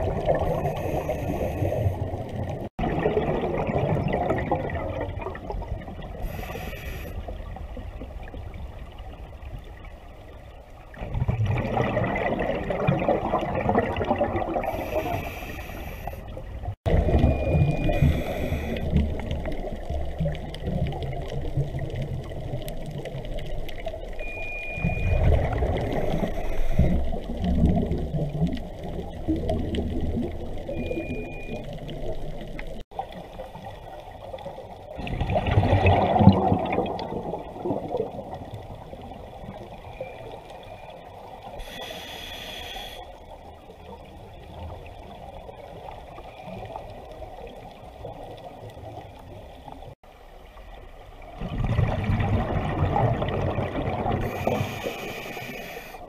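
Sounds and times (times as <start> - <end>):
muffled underwater rumble: 0.0 - 56.0
short high beeps: 0.4 - 1.9, 14.7 - 16.2, 17.1 - 18.8, 24.2 - 27.0, 30.7 - 31.7, 41.6 - 43.0, 54.2 - 56.0.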